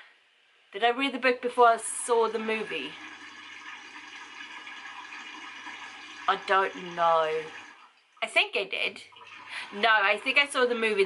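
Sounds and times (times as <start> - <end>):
dishwasher spraying water: 9.2 - 11.0.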